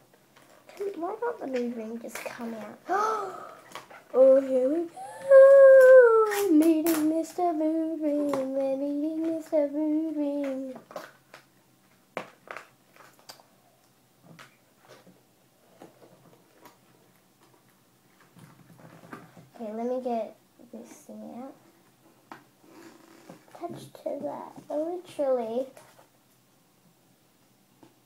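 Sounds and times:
girl singing: 0:04.2 - 0:10.9.

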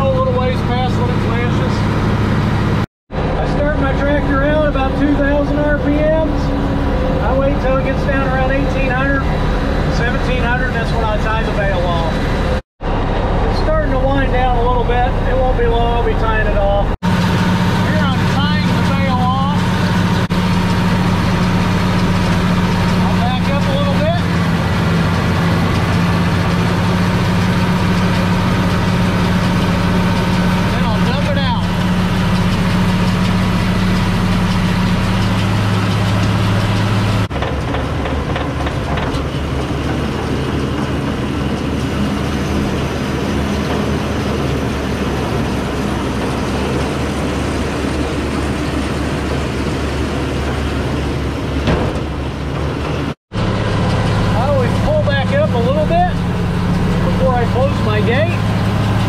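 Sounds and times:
round baler working: 0:00.0 - 0:59.0
tractor diesel engine under load: 0:00.0 - 0:59.0.

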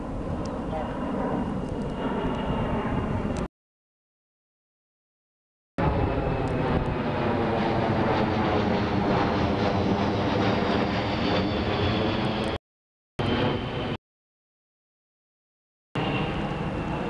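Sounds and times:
jet aircraft roar overhead: 0:00.0 - 0:03.5, 0:05.8 - 0:12.6, 0:13.2 - 0:14.0, 0:16.0 - 0:17.0.

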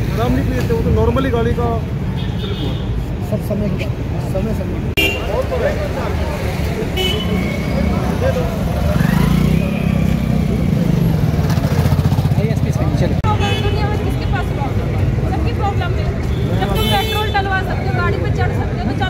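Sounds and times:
street traffic: 0:00.0 - 0:19.0
motorcycle engine running: 0:08.7 - 0:13.2.

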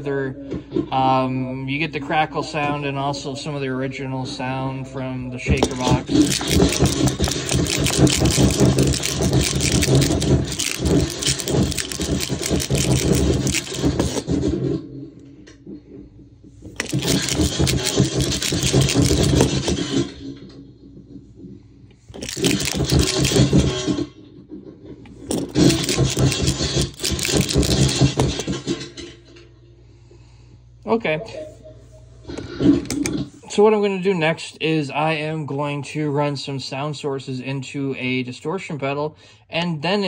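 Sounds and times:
shaker box: 0:05.6 - 0:14.3, 0:16.7 - 0:19.8, 0:22.1 - 0:23.7, 0:25.2 - 0:28.5.

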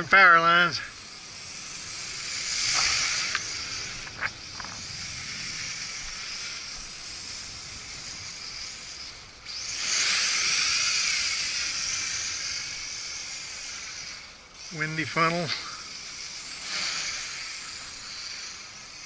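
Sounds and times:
drone motors whining: 0:00.0 - 0:19.0.

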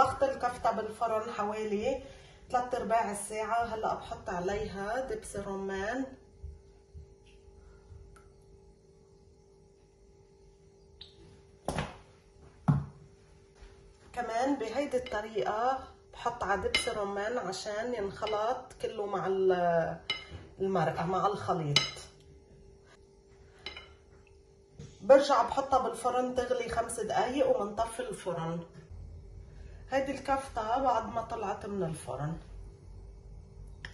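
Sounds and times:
faint steady hum: 0:00.0 - 0:33.9
bottle knocking on countertop: 0:11.7 - 0:12.0, 0:12.6 - 0:13.0
metal spoon clinking glass dish: 0:20.1 - 0:20.3, 0:23.7 - 0:23.9.

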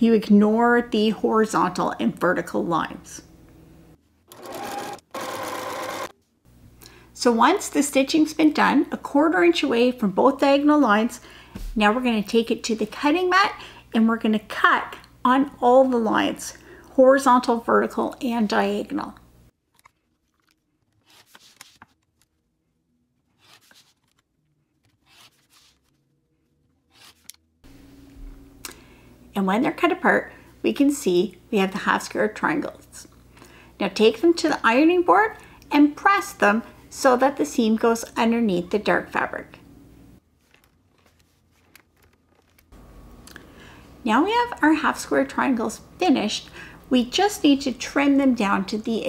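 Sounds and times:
electric sewing machine running: 0:04.3 - 0:06.1
rotary cutter slicing fabric: 0:04.3 - 0:06.1, 0:23.3 - 0:24.1, 0:24.9 - 0:25.8, 0:26.8 - 0:27.4.

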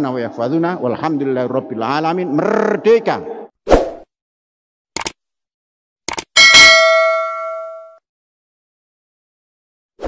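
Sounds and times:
bell ding: 0:06.4 - 0:08.0.

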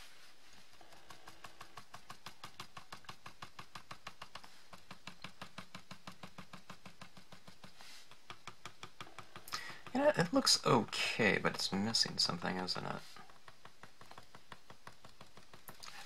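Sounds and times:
cotton swab tapping on card: 0:00.9 - 0:16.0.

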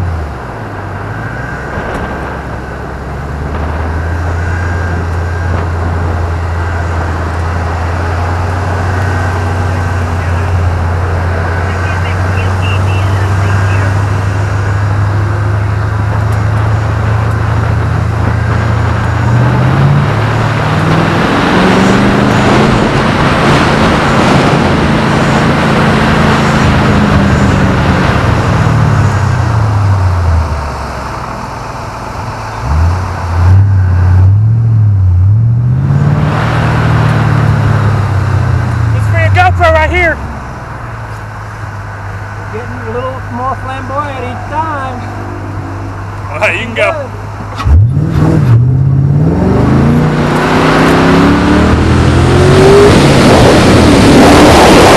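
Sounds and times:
car engine revving: 0:00.0 - 0:54.9.

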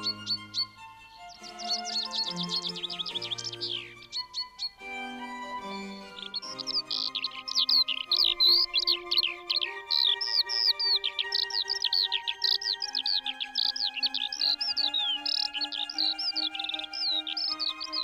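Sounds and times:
soft background music: 0:00.0 - 0:18.0
songbirds chirping: 0:00.0 - 0:18.0.

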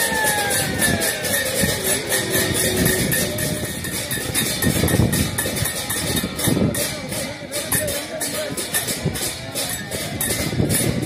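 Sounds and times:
sliding melodic line: 0:00.0 - 0:06.4
bells or cymbals ringing: 0:00.0 - 0:11.0
rumble of crowd: 0:00.0 - 0:11.0.

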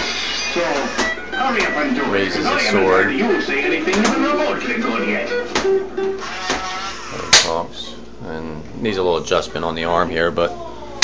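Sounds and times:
plucked guitar music: 0:01.0 - 0:06.2.

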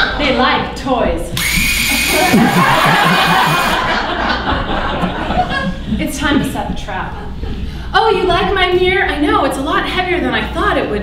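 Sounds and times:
cordless drill whining: 0:01.4 - 0:03.8
audience laughing: 0:01.9 - 0:06.0.

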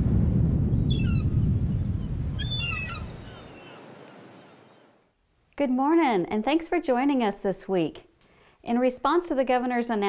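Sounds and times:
low rumbling surf-like wash: 0:00.0 - 0:05.0
short bird calls: 0:00.9 - 0:01.4, 0:02.4 - 0:04.9.

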